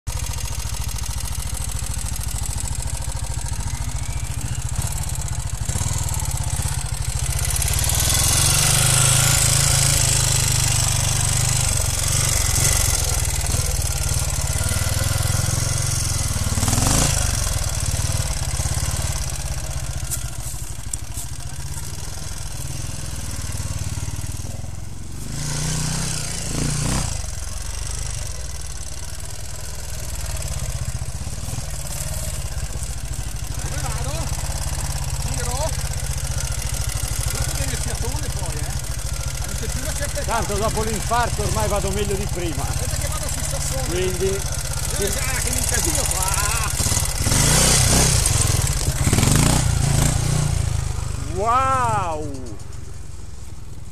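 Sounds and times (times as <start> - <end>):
motorcycle engine revving: 0.1 - 53.9.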